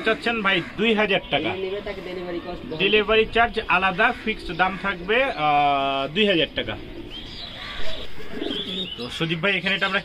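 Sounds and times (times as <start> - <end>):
pigeons cooing: 3.7 - 10.0
high bird chirps: 7.0 - 10.0.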